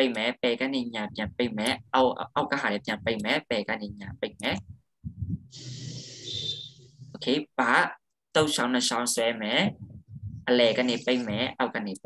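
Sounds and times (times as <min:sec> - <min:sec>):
person breathing out hiss: 0:05.5 - 0:06.7.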